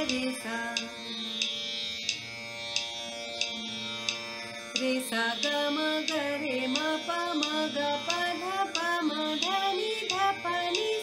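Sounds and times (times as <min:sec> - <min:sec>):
tabla beat: 0:00.0 - 0:01.5, 0:03.4 - 0:11.0
tanpura drone: 0:00.0 - 0:11.0.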